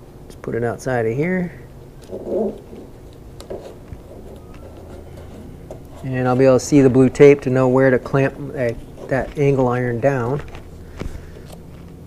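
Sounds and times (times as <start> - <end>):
short low hum: 3.9 - 12.0
faint rustles: 8.0 - 12.0.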